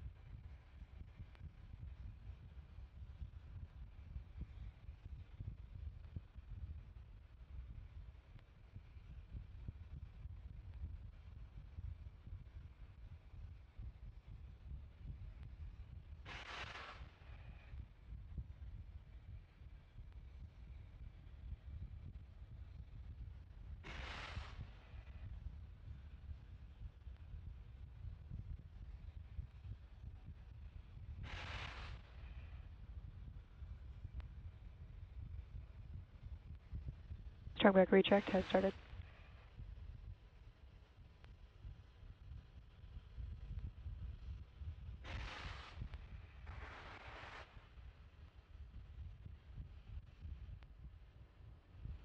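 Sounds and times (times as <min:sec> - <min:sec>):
low steady rumble: 0:33.1 - 0:38.8.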